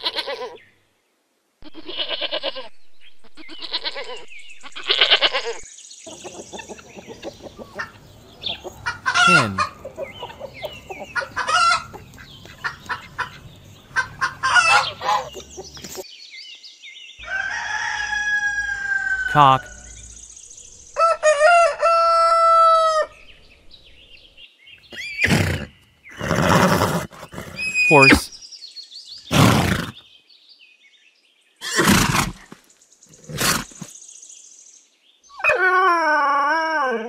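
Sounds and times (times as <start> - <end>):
goat bleating: 0.0 - 0.6, 1.6 - 2.7, 3.3 - 5.6
hens clucking and cackling: 4.8 - 16.0.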